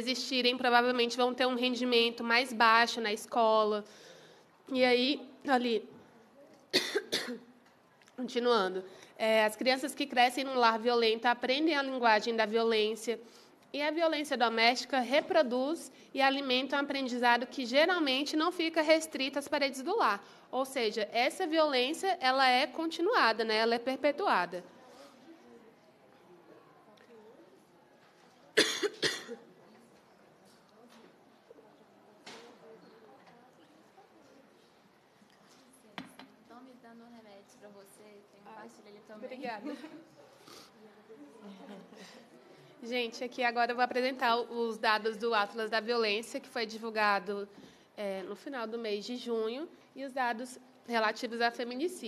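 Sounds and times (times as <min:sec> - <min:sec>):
person coughing: 0:06.7 - 0:07.5, 0:28.6 - 0:29.4.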